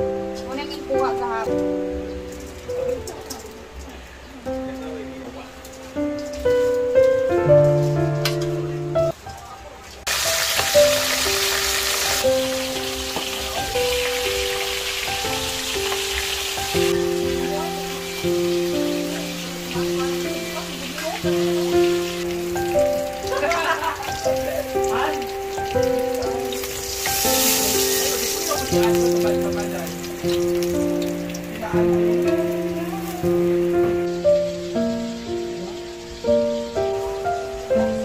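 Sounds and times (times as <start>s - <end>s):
background music with held notes: 0.0s - 38.0s
fish sizzling in hot oil: 0.0s - 38.0s.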